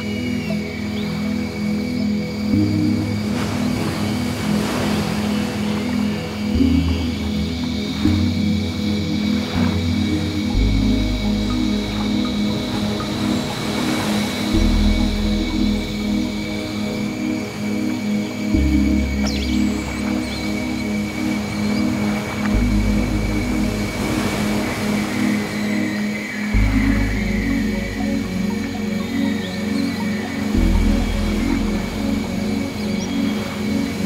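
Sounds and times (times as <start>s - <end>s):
ambient background music: 0.0s - 34.0s.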